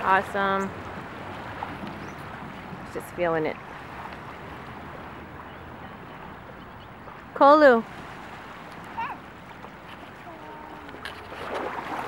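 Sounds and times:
small waves washing on shore: 0:00.0 - 0:12.0.

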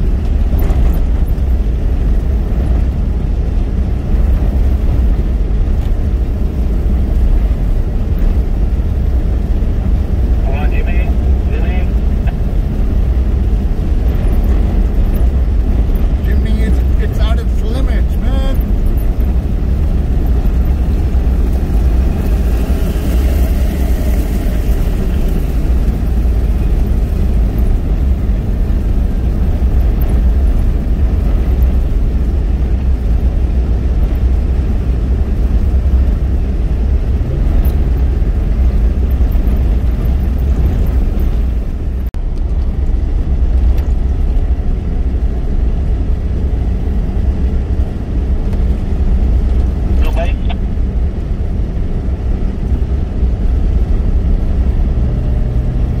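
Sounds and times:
car cabin rumble on dirt track: 0:00.0 - 0:56.0.

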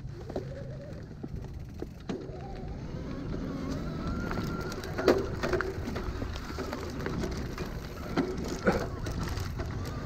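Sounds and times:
clicks and knocks from trail: 0:00.0 - 0:10.0
electric bike motor whining: 0:00.0 - 0:10.0
tyres rumbling on dirt: 0:00.0 - 0:10.0.

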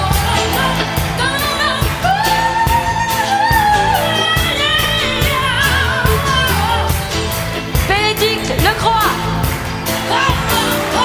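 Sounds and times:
live pop band playing: 0:00.0 - 0:11.0
woman singing: 0:00.0 - 0:11.0.

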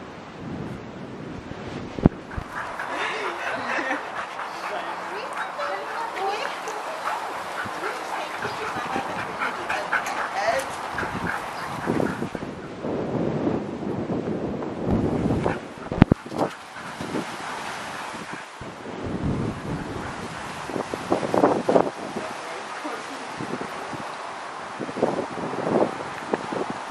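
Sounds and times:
wind rumbling on microphone: 0:00.0 - 0:26.9
dogs vocalizing: 0:02.2 - 0:12.7, 0:15.1 - 0:18.6, 0:19.5 - 0:20.9.

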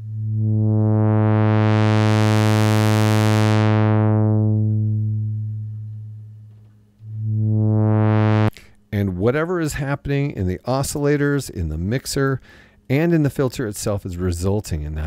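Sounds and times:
synthesizer note with filter sweep: 0:00.0 - 0:08.7.

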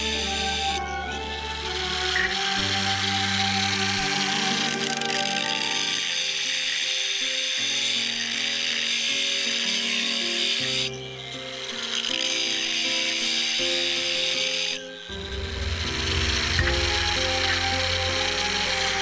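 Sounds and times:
angle grinder cutting steel: 0:00.0 - 0:19.0
background music: 0:00.0 - 0:19.0.

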